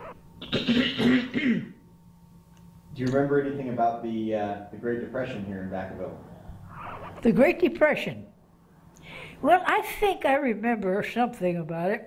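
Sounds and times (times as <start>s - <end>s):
woman clearing her throat: 0.4s - 1.8s.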